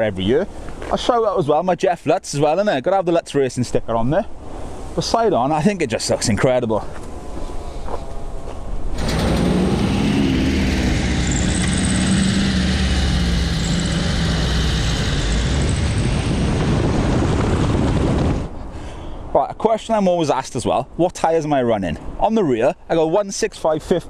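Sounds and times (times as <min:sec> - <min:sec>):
road and wind noise: 0:00.0 - 0:24.0
car engine hum: 0:08.9 - 0:17.6.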